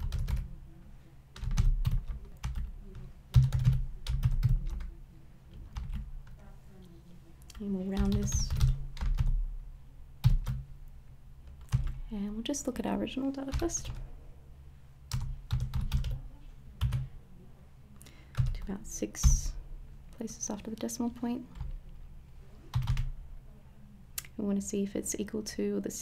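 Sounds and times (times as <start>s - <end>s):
computer keyboard keystrokes: 0.0s - 0.5s, 1.4s - 4.9s, 5.6s - 6.4s, 7.5s - 9.4s, 11.5s - 12.0s, 15.1s - 16.2s, 18.3s - 18.6s, 22.7s - 23.1s
low steady hum: 0.0s - 26.0s.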